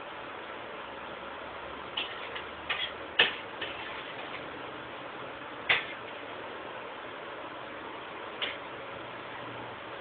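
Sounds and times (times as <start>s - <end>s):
steady hiss: 0.0s - 10.0s.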